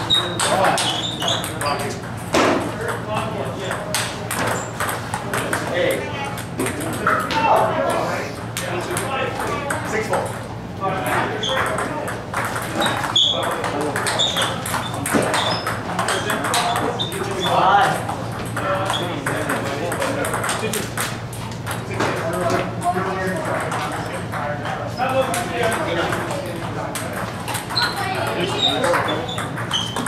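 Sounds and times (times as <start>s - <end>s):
table tennis balls clicking: 0.0s - 2.2s, 2.8s - 7.4s, 8.5s - 10.4s, 11.1s - 30.0s.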